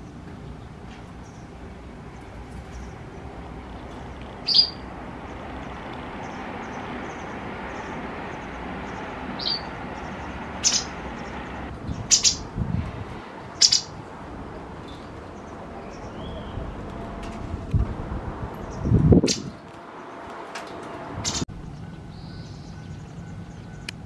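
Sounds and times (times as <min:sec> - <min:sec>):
bird giving sharp calls: 0:04.4 - 0:04.8, 0:08.9 - 0:11.4, 0:12.0 - 0:12.5, 0:13.6 - 0:14.0.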